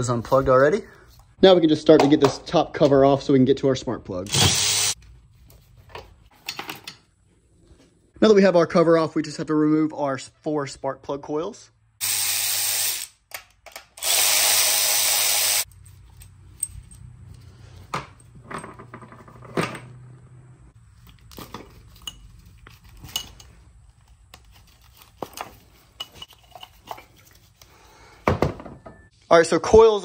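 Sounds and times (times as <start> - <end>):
electric ratchet spinning: 4.3 - 5.0, 12.0 - 13.2, 14.0 - 15.7.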